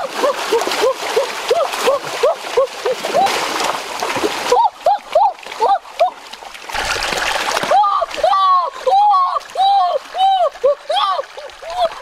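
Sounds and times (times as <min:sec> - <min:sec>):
water splashing in a stream: 0:00.0 - 0:12.0
person calling out: 0:07.8 - 0:12.0.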